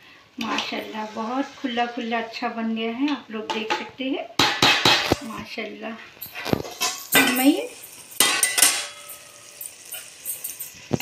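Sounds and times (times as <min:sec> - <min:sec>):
spoon scraping a metal pot: 0:06.2 - 0:11.0.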